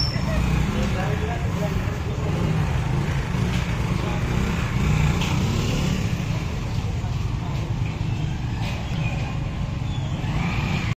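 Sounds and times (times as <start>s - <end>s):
motorcycle engine low rumble: 0.0s - 10.9s.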